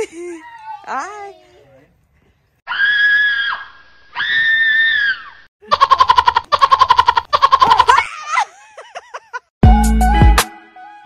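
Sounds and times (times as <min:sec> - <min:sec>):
high-pitched screams: 0:02.7 - 0:05.5
hysterical laughter: 0:05.6 - 0:09.5.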